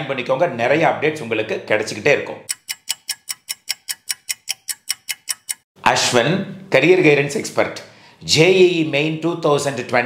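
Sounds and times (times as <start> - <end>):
rapid clock ticking: 2.5 - 5.6.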